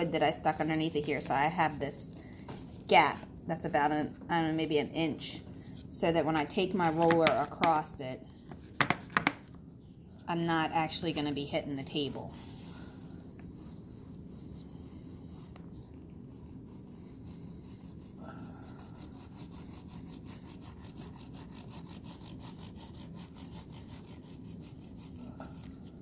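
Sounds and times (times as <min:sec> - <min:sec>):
paint roller rasping on panel: 0:12.0 - 0:26.0.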